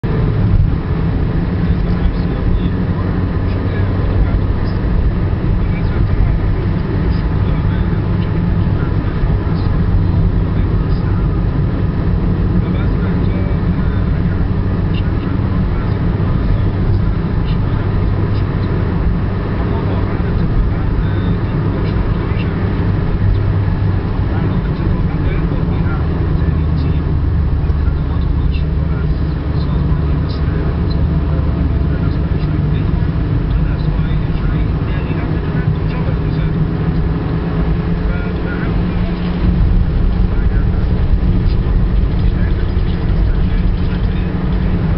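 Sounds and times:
car cabin road and engine noise: 0.0s - 44.9s.

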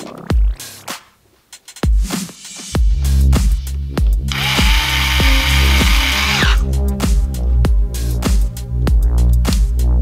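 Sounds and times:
electric screwdriver running: 4.3s - 6.7s
electronic dance music: 4.3s - 6.7s.

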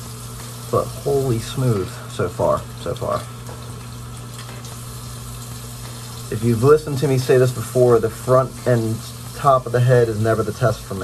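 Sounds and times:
tap water running into sink: 0.0s - 11.0s.

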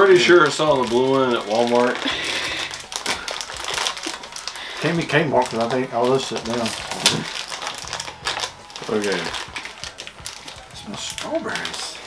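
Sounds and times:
plastic bag being torn open: 0.0s - 12.0s.

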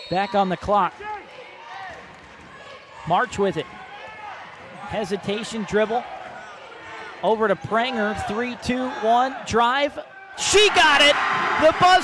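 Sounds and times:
voices echoing in gymnasium: 0.0s - 12.0s.

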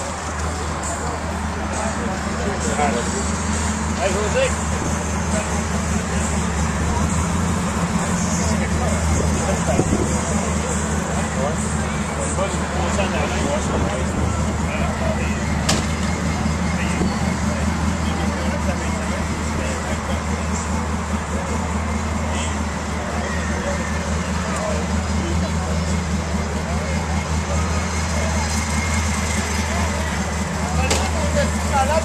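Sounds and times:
background chatter: 0.0s - 32.0s
low engine drone: 0.0s - 32.0s.

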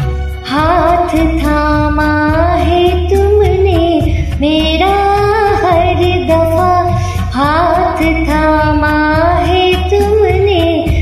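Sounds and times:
karaoke backing track: 0.0s - 11.0s
woman singing devotional song: 0.4s - 11.0s.

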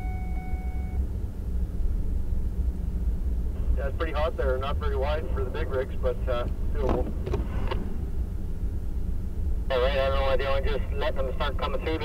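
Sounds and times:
vehicle engine and tyres rumbling: 0.0s - 12.0s.

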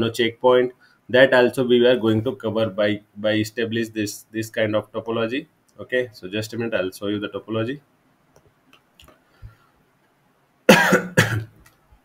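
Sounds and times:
man coughing loudly: 10.7s - 11.5s.

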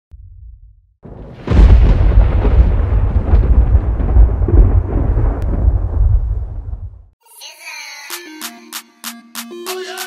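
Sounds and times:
deep rumble: 0.1s - 7.2s.

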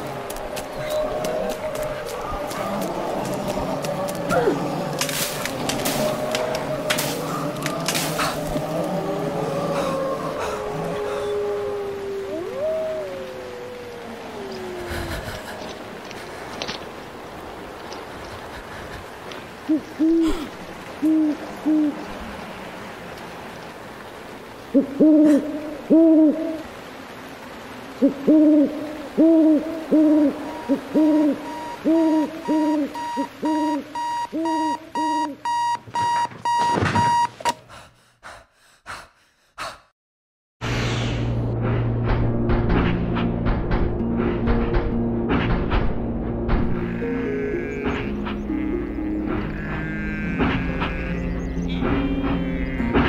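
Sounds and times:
owl hooting: 28.0s - 35.4s
alarm clock beeping: 33.0s - 37.6s
low rumble: 40.6s - 46.8s
sustained music-like tones: 41.3s - 53.0s.

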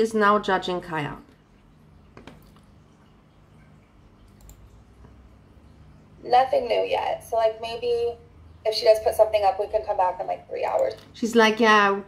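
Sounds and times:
low steady hum: 0.0s - 12.0s
computer mouse clicks: 4.3s - 4.7s.

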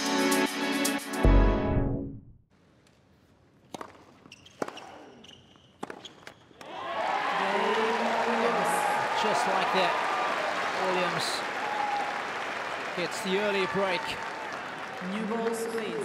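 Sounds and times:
racquet hitting tennis ball: 3.6s - 5.1s, 5.8s - 6.7s
crowd cheering and applauding: 6.6s - 16.0s.

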